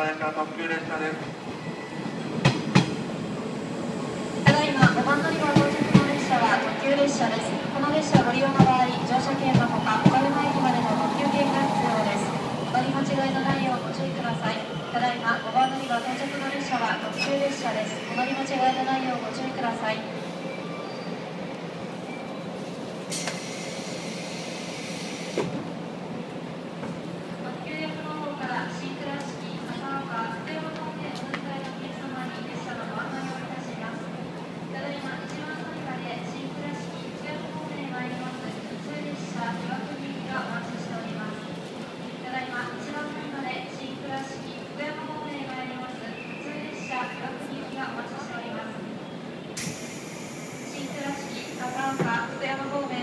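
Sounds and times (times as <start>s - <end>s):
electric train arriving: 0.0s - 53.0s
air hiss: 23.1s - 25.5s, 49.6s - 52.0s.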